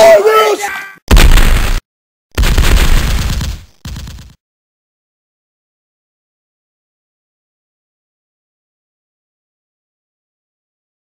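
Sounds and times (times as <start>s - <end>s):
loud distorted gunfire: 1.1s - 1.8s, 2.4s - 4.4s.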